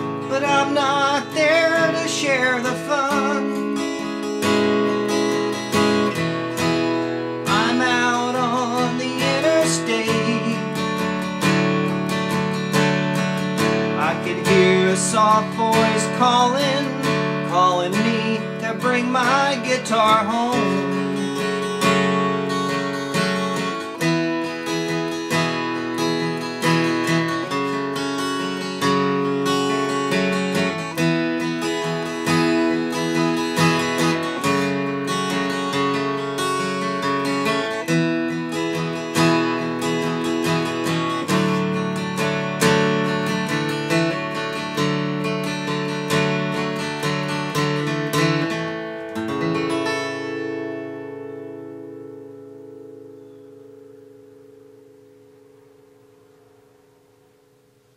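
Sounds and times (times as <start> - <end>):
acoustic guitar strumming: 0.0 - 57.9.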